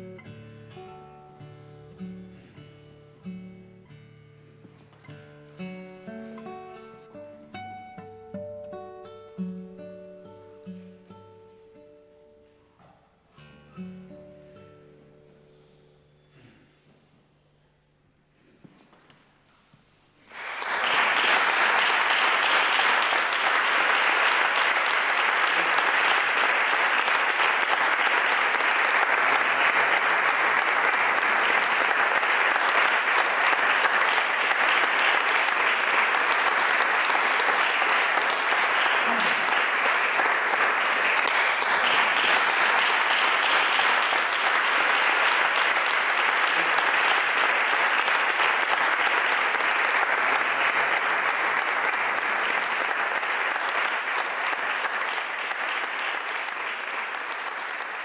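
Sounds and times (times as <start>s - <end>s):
audience applauding: 20.2s - 58.0s.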